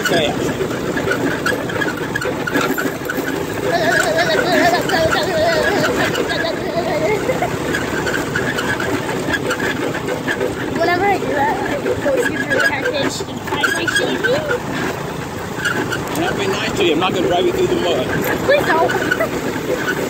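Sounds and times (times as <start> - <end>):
go-kart running: 0.0 - 20.0.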